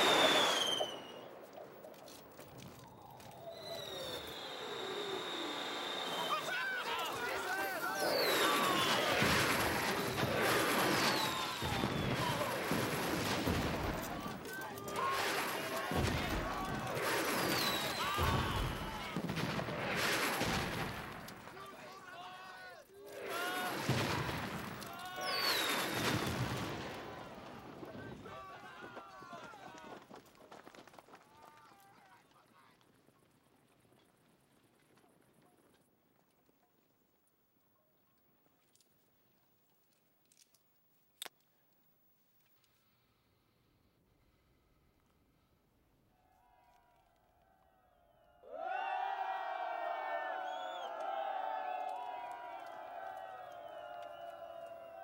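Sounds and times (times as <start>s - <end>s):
rocket shells exploding: 0.0s - 22.1s, 23.1s - 28.2s
men shouting and screaming: 6.1s - 12.8s, 28.0s - 30.0s
gunfire: 6.1s - 21.7s, 23.2s - 27.1s.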